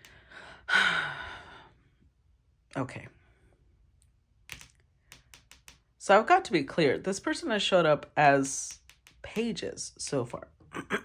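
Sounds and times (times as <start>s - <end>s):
fingernails tapping on a card: 4.5s - 5.9s, 8.7s - 9.5s.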